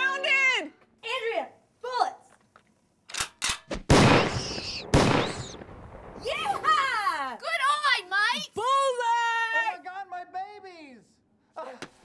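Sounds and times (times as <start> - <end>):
sharp gun clicks: 2.6 - 3.8
shotgun blasts with echo: 3.7 - 6.2.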